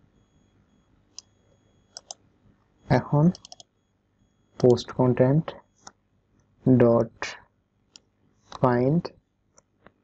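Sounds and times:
mouse and keyboard clicks: 0:01.9 - 0:02.2, 0:03.3 - 0:03.7, 0:04.6 - 0:04.8.

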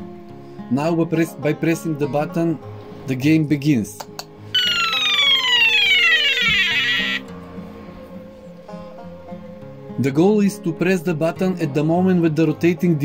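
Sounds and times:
falling electronic buzzer tone: 0:04.6 - 0:07.2
guitar music: 0:04.6 - 0:07.8.

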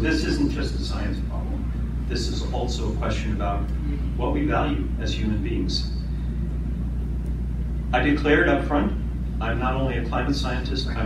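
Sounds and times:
man speaking: 0:00.0 - 0:06.0
low room hum: 0:00.0 - 0:11.0.

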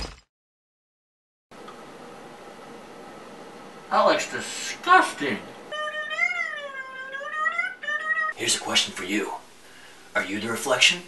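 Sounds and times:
man's high-pitched ooh: 0:05.7 - 0:08.4.

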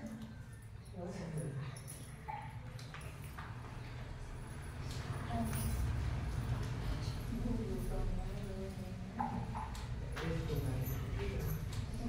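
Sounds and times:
people talking in a room: 0:00.0 - 0:12.0.

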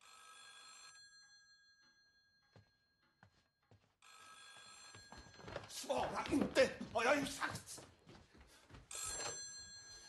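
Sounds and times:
telephone ringing faintly: 0:04.0 - 0:06.8, 0:08.9 - 0:10.0.

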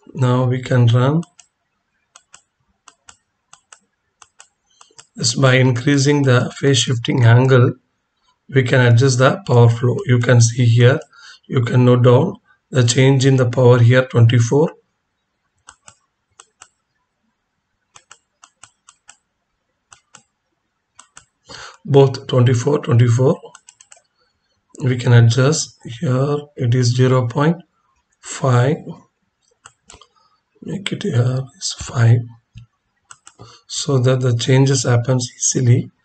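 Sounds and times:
faint computer mouse clicks: 0:01.2 - 0:05.2, 0:15.6 - 0:16.8, 0:17.9 - 0:19.3, 0:19.9 - 0:20.4, 0:21.0 - 0:21.4, 0:23.5 - 0:24.1, 0:29.5 - 0:30.2, 0:32.6 - 0:33.5.

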